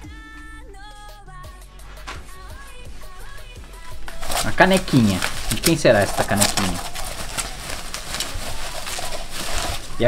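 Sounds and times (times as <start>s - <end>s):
bubble wrap crinkling: 1.8s - 10.0s.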